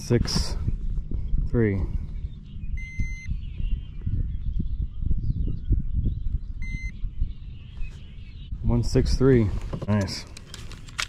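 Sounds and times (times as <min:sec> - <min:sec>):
low irregular rumble: 0:00.0 - 0:07.5.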